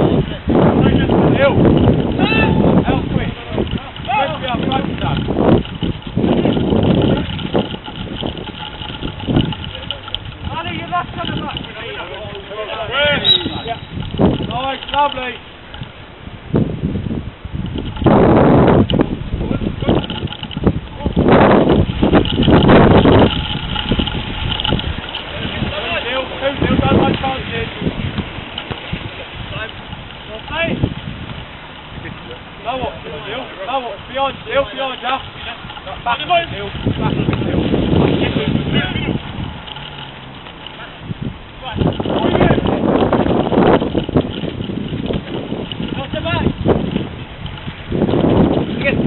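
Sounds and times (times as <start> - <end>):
wind buffeting microphone: 0.0 - 49.0
players calling out: 11.5 - 15.7.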